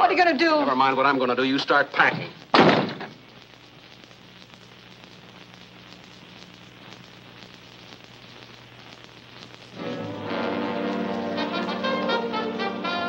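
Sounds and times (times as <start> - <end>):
film soundtrack hiss and crackle: 0.0 - 13.0
music: 9.6 - 13.0.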